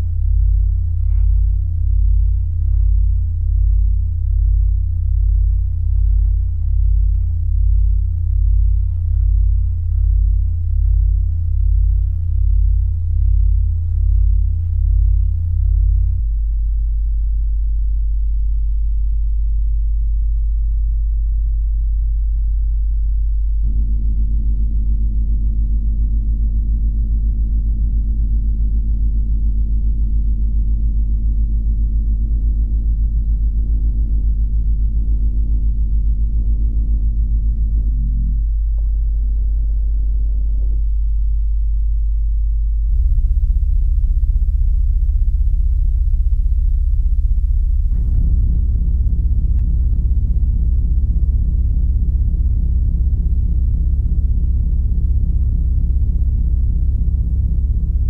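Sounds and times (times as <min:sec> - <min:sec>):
deep throbbing electronic drone: 0:00.0 - 0:20.5, 0:22.8 - 0:58.0.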